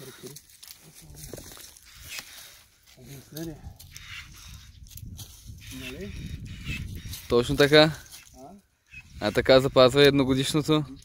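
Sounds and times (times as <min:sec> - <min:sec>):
branches rustling: 0:00.0 - 0:11.0
pruning shears snipping: 0:01.7 - 0:02.5.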